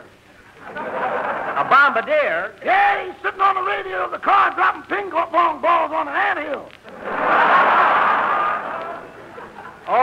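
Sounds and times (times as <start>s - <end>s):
studio audience laughing: 0.4s - 1.7s, 6.9s - 9.9s.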